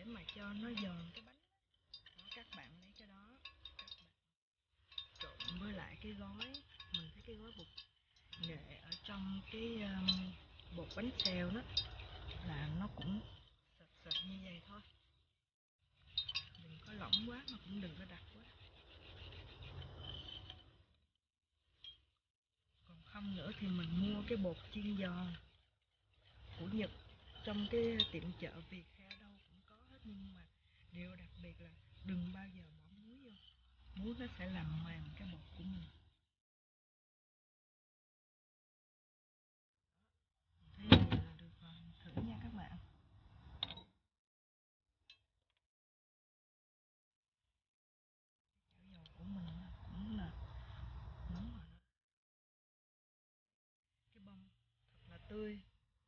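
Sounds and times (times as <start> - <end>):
whisk clinking against ceramic bowl: 0.0 - 4.2, 4.9 - 14.7, 16.1 - 20.7, 26.4 - 30.3
whisk knocking ceramic bowl: 2.0 - 4.0, 16.2 - 20.6.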